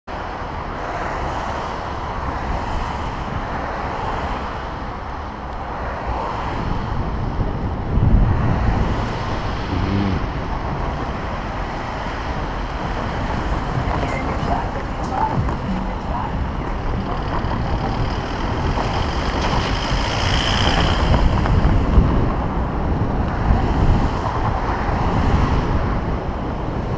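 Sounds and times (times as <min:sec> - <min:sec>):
cars passing: 0:00.1 - 0:26.9
wind buffeting microphone: 0:01.8 - 0:26.9.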